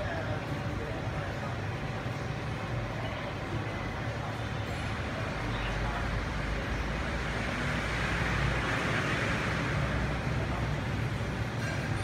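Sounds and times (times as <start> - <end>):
engine rumble of traffic: 0.0 - 12.0.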